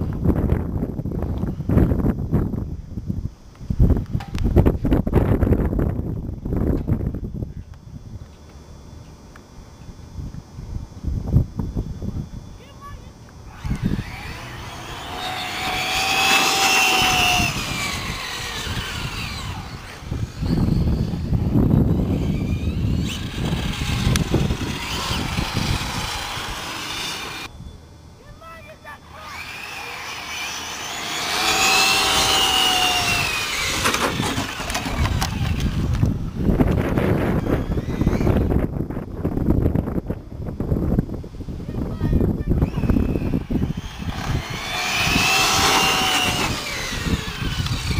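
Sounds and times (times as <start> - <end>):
rc car motor whine: 11.3 - 27.6, 28.4 - 39.7, 42.1 - 47.9.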